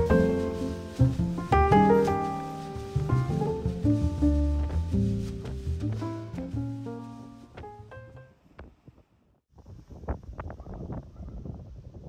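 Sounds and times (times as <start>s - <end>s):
street ambience rushing haze: 0.0s - 7.6s
jazz track with double bass: 0.0s - 8.3s.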